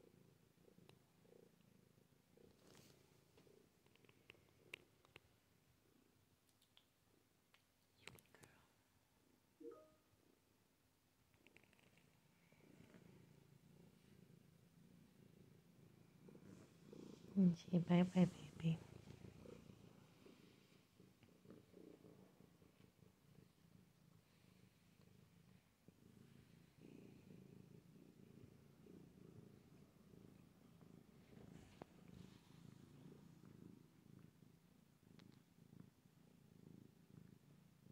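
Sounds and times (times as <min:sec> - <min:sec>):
cat purring: 0:00.0 - 0:37.9.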